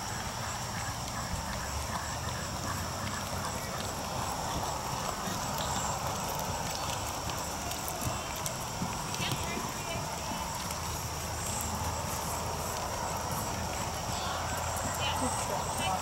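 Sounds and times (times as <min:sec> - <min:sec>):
horse hoofbeats trotting on sand: 0:00.0 - 0:16.0
faint voices: 0:00.1 - 0:16.0.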